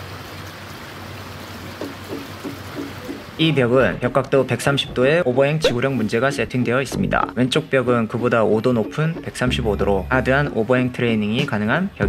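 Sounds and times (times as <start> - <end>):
creek water rushing: 0.0 - 11.0.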